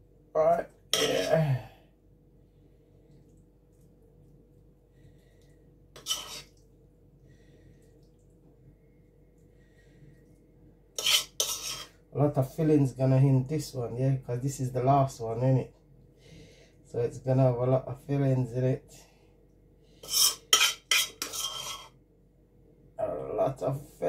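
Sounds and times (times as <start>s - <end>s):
spoon scraping and clinking a pan: 6.0s - 6.5s, 11.0s - 11.9s, 20.0s - 21.9s.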